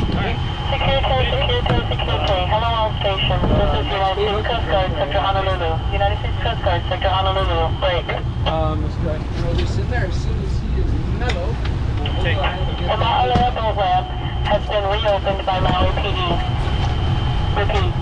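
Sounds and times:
boat engine rumble: 0.0 - 18.0.

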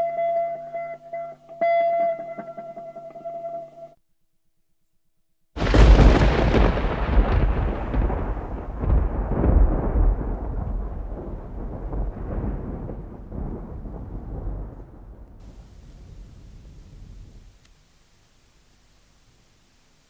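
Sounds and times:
loud crash with deep rumble: 5.6 - 17.4.

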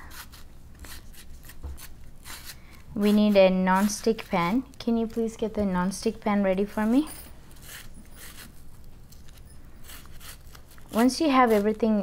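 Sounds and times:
knife slicing onion: 0.0 - 4.7, 6.8 - 8.6, 9.2 - 12.0.

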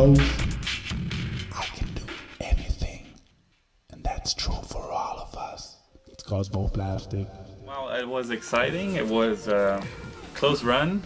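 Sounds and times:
person whispering: 1.5 - 3.2, 3.9 - 5.9.

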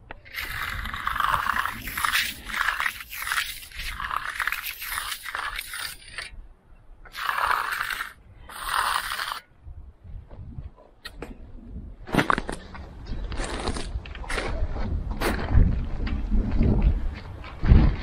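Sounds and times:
edging tool scraping concrete: 0.2 - 6.3, 7.1 - 9.5.

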